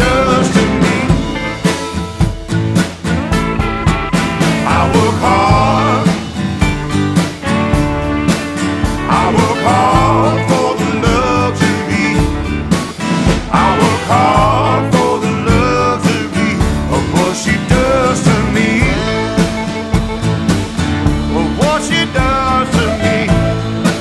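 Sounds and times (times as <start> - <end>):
pitch-bending lead melody: 0.0 - 16.0, 18.6 - 24.0
blues-rock band music: 0.0 - 24.0.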